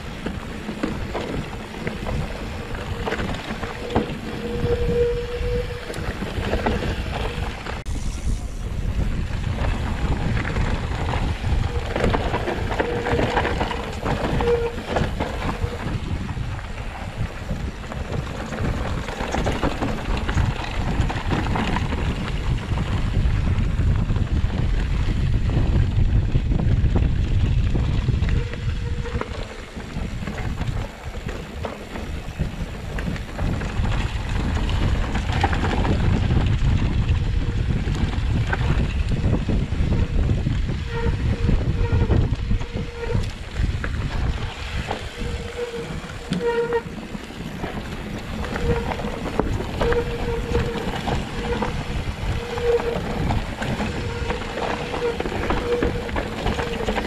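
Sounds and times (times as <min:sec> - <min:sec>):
bike tyres rattling on rough ground: 0:00.0 - 0:57.0
wind buffeting microphone: 0:00.0 - 0:57.0.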